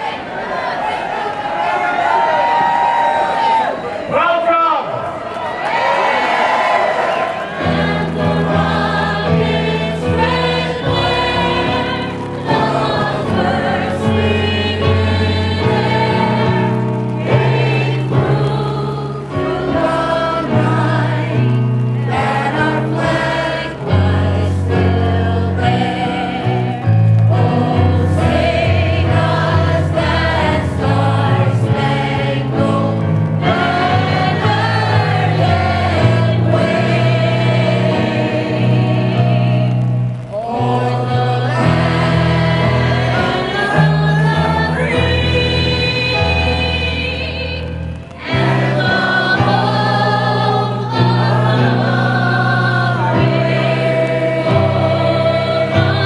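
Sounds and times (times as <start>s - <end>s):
person singing: 40.3s - 56.0s.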